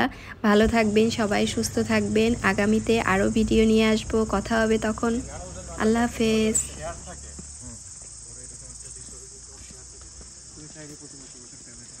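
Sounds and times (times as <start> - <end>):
high-pitched insect drone: 0.8 - 12.0.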